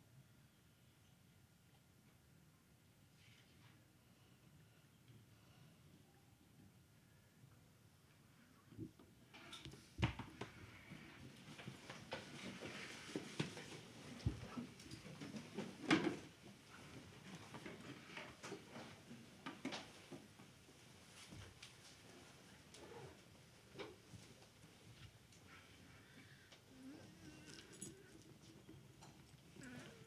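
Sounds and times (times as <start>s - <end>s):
faint room noise: 0.0s - 30.0s
small handling noises: 8.8s - 30.0s.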